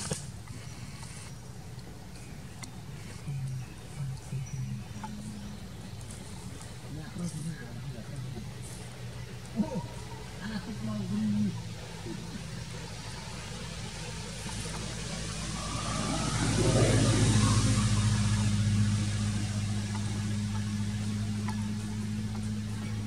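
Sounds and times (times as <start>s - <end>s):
steady low drone: 0.0s - 23.0s
passing motor vehicle engine: 3.4s - 23.0s.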